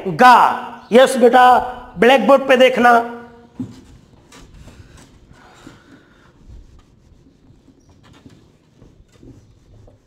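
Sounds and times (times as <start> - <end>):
duster rubbing whiteboard: 3.6 - 10.0.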